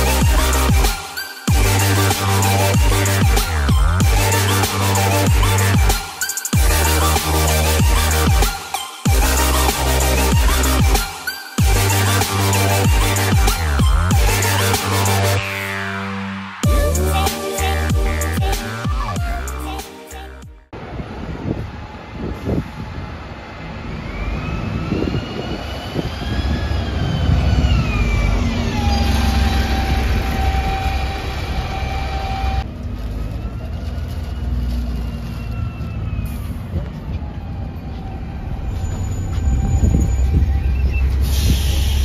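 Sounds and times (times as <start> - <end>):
bus diesel engine rumbling: 0.0 - 0.9, 11.6 - 42.0
high engine whine: 0.0 - 42.0.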